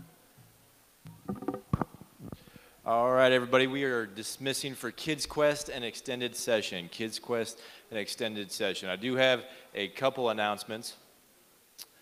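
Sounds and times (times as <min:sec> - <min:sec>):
microphone handling thumps and rubs: 0:01.1 - 0:02.6
man speaking: 0:02.9 - 0:11.1.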